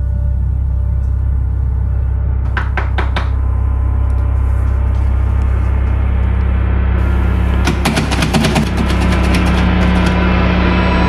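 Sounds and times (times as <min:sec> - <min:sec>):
horror soundtrack low drone: 0:00.0 - 0:11.0.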